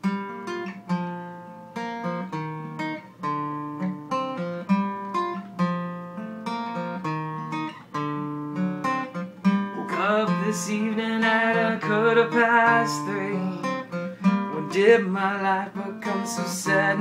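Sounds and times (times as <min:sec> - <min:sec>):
acoustic guitar chords: 0:00.0 - 0:17.0.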